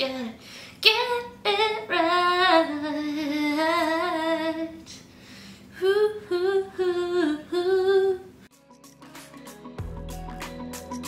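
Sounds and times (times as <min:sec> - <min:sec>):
woman singing wordless tune: 0:00.0 - 0:05.1, 0:05.7 - 0:08.5
music: 0:08.5 - 0:11.0.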